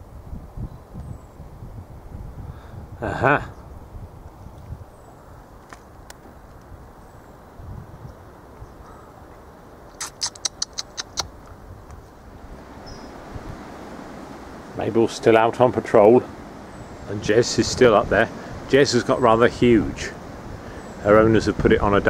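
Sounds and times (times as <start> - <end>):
sharp clicks: 9.9 - 12.0.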